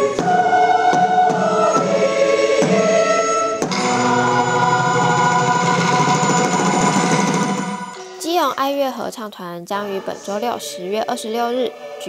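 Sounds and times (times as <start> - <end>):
choir holding a chord: 0.0 - 8.2, 9.8 - 12.0.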